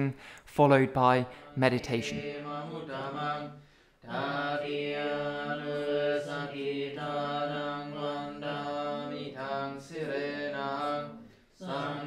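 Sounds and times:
monks chanting: 1.2 - 12.0.

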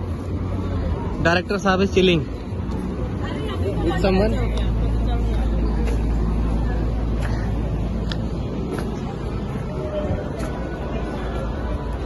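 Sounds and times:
steady low rumble: 2.1 - 12.0.

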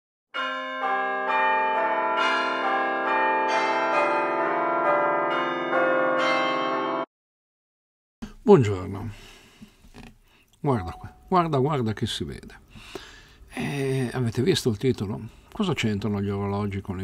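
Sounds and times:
chiming bell notes: 0.4 - 7.1, 10.7 - 11.3.

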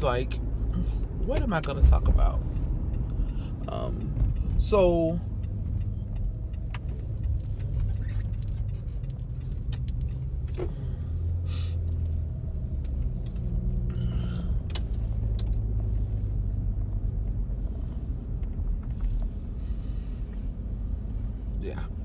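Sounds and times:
car engine and road rumble: 0.0 - 22.0
faint clicks and rattles: 4.1 - 10.7.

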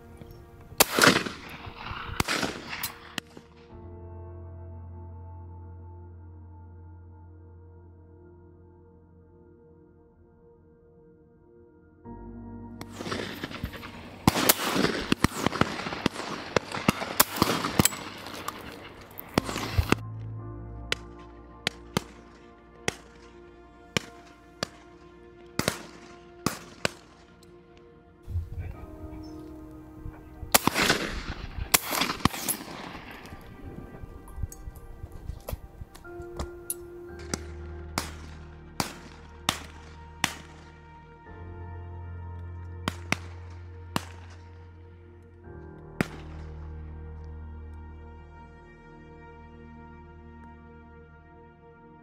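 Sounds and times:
background music with held tones: 0.0 - 52.0
shotguns firing: 0.8 - 3.5, 12.9 - 20.0, 25.6 - 27.2, 30.5 - 33.5, 37.2 - 40.8.

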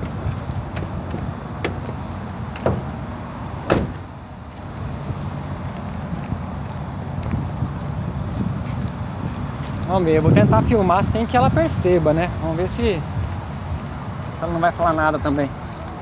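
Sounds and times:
vehicle door shutting: 0.0 - 4.2
low outdoor rumble: 0.0 - 16.0.

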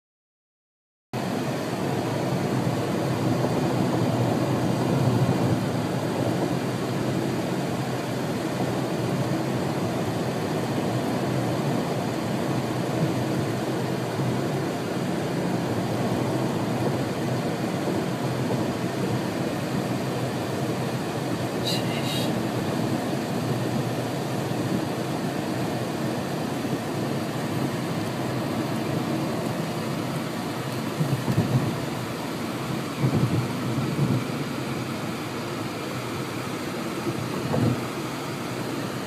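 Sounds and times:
car driving rumble inside cabin: 1.2 - 39.0.

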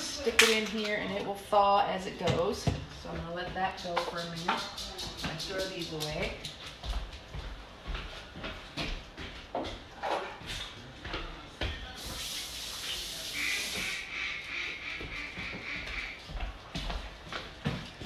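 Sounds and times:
sharp hiss: 12.0 - 14.1.

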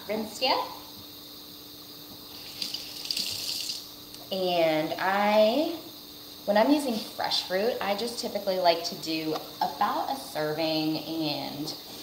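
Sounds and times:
steady hum: 0.0 - 12.0
tap water running: 2.0 - 4.4.

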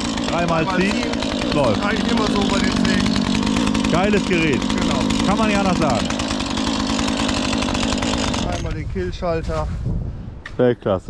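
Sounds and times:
chainsaw running steadily: 0.0 - 9.0.

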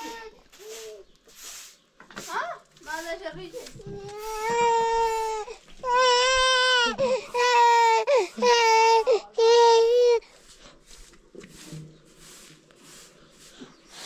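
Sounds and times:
baby crying: 4.0 - 10.2.

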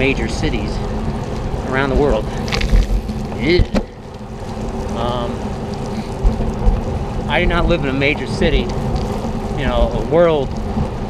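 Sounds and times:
bicycle tyres on wet pavement: 0.0 - 11.0
wind on microphone: 0.0 - 11.0.

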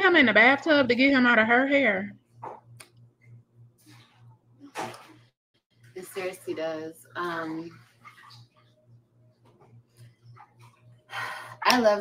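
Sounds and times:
low pulsing hum: 0.0 - 12.0.

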